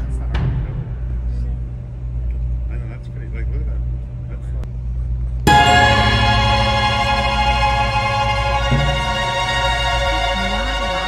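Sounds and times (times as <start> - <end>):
boat engine droning: 5.5 - 11.0.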